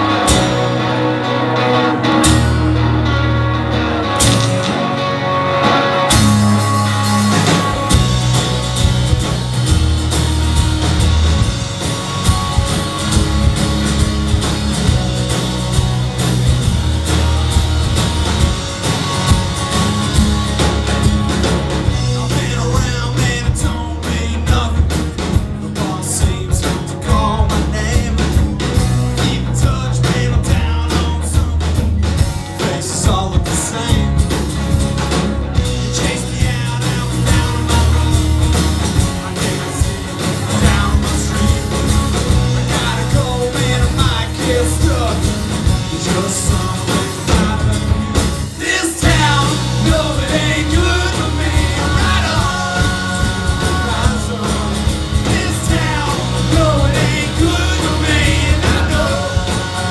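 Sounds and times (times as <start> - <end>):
bass guitar: 0.0 - 59.9
drum kit: 0.0 - 59.9
guitars playing: 0.0 - 59.9
person singing: 21.9 - 25.1, 35.7 - 59.9.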